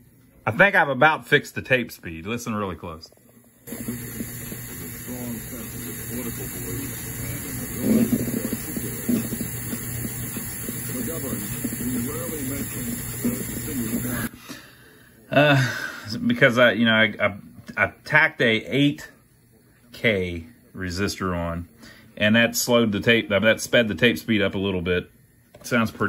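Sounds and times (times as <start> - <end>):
tape hiss: 0.0 - 15.5
weak recorded voice: 3.7 - 14.3.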